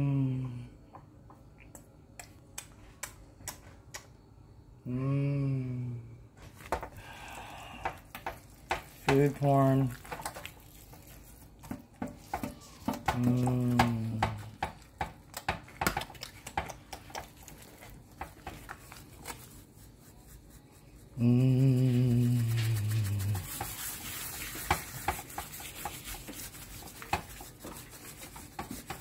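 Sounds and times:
person humming: 0:00.0 - 0:00.8, 0:04.8 - 0:06.2, 0:12.6 - 0:14.6, 0:21.1 - 0:23.5
hand patting wet paste on meat: 0:06.6 - 0:20.6, 0:21.7 - 0:29.0.

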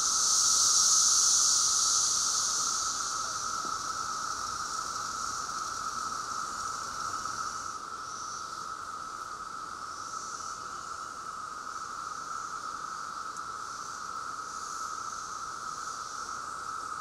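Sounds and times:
cicada hiss: 0:00.0 - 0:17.0
cicadas droning: 0:00.0 - 0:17.0.

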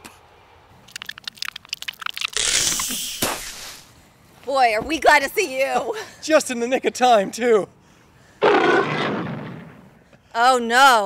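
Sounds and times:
sharp cracks and crunches: 0:00.8 - 0:03.9
loud rushing crash: 0:08.4 - 0:09.9.

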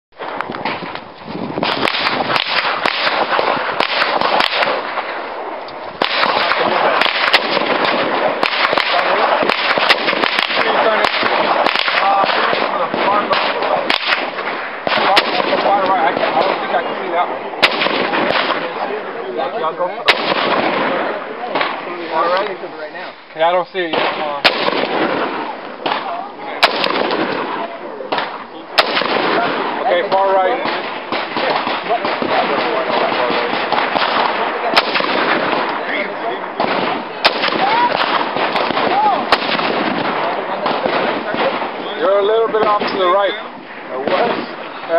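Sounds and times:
outdoor range noise: 0:00.1 - 0:44.9
gunshots: 0:00.2 - 0:22.6, 0:23.4 - 0:44.9
rifle shots: 0:00.2 - 0:22.6, 0:23.8 - 0:44.9.

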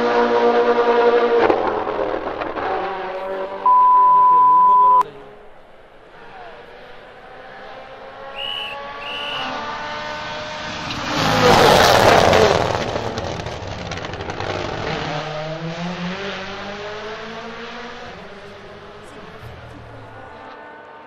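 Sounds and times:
rally car engine at full throttle: 0:00.0 - 0:21.0
tyre and road noise: 0:00.0 - 0:21.0
short high beeps: 0:03.6 - 0:05.0.

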